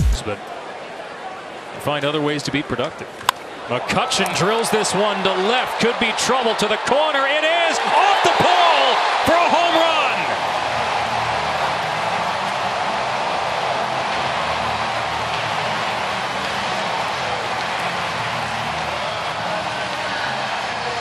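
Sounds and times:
stadium crowd cheering: 0.0 - 21.0.

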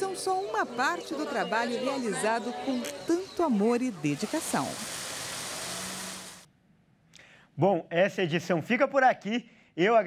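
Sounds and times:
outdoor background noise: 0.0 - 8.8.

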